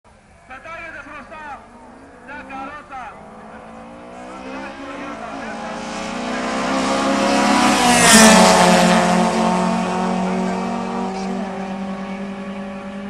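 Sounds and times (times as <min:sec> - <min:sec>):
drag racing cars at full throttle: 0:00.2 - 0:13.0.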